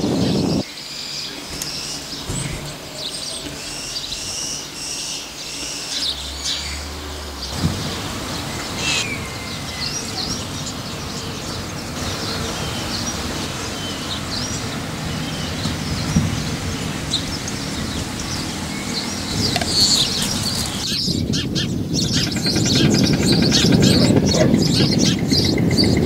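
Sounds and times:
rushing noise: 0:00.0 - 0:21.0
small birds chirping: 0:00.0 - 0:26.0.

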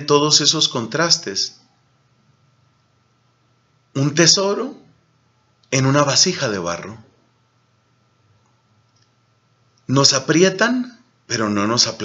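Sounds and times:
man speaking: 0:00.0 - 0:01.6, 0:03.9 - 0:04.9, 0:05.7 - 0:07.1, 0:09.9 - 0:12.0
faint high hum: 0:00.0 - 0:12.0
tiny faint clicks: 0:08.4 - 0:09.9.

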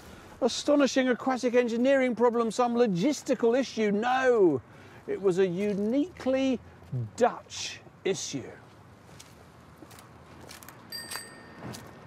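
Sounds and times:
low street noise: 0:00.0 - 0:12.0
bicycle bell ringing: 0:10.9 - 0:11.9.

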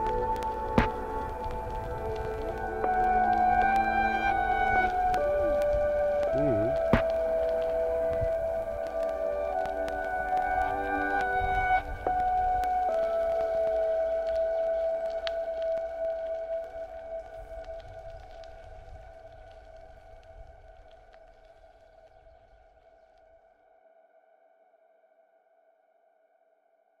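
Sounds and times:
ambient background music: 0:00.0 - 0:23.6.

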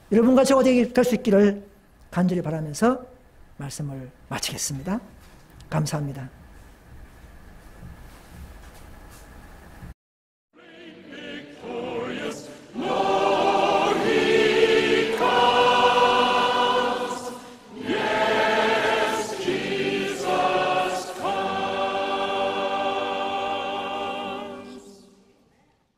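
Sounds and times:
choir singing held chords: 0:10.5 - 0:25.2.

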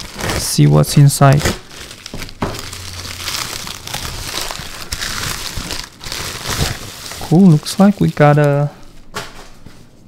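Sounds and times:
plastic mailer crinkling and rustling: 0:00.0 - 0:10.0.

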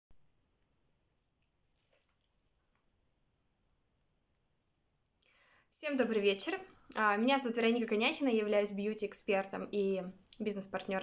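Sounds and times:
intake of breath: 0:05.2 - 0:05.7
woman speaking: 0:05.8 - 0:11.0.

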